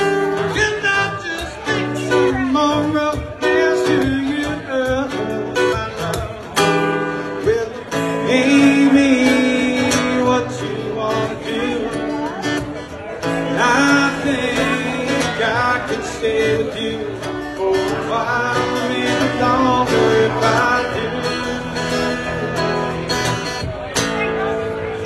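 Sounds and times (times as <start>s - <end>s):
live band with guitar: 0.0s - 25.0s.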